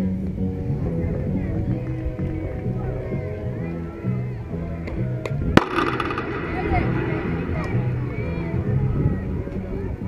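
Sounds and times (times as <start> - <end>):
voices and chanting: 0.6 - 10.0
softball bat crack: 4.9 - 8.0.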